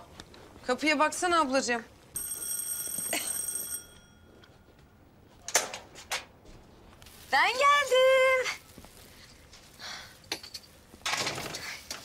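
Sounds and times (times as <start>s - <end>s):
electric doorbell ringing: 2.2s - 4.6s.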